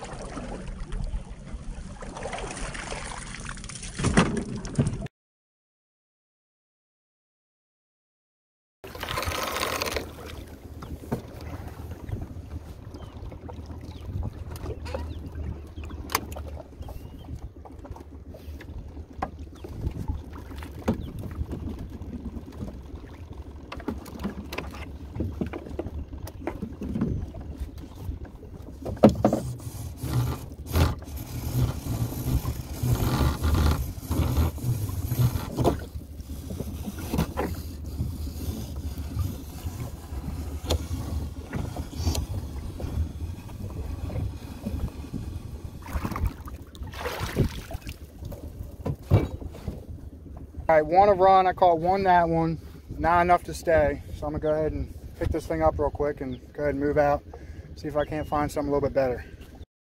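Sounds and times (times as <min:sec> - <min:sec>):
water splashing against hull: 0:00.0 - 0:05.1, 0:08.8 - 0:59.6
low steady rumble: 0:08.9 - 0:59.4.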